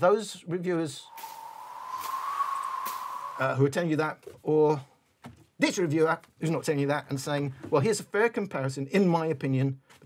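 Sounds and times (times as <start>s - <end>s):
steady high tone: 1.0s - 3.8s.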